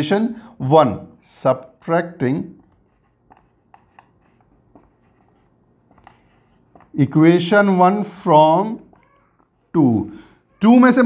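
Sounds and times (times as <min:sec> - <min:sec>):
man speaking: 0:00.0 - 0:02.6, 0:06.9 - 0:08.9, 0:09.7 - 0:11.0
marker scratching on whiteboard: 0:01.5 - 0:10.0.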